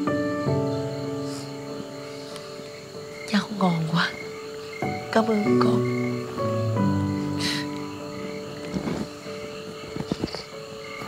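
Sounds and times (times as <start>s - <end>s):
soft music with long chords: 0.0s - 11.0s.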